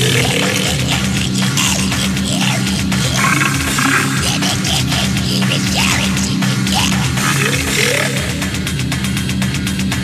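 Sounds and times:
distorted grindcore music: 0:00.0 - 0:10.0.

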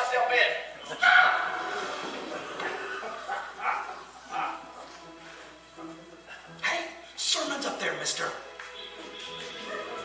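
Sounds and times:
music over loudspeakers: 0:00.3 - 0:10.0.

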